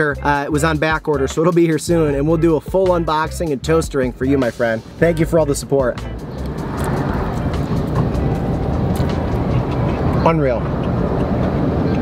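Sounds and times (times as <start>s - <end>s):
vehicle rumble inside car: 6.3s - 12.0s.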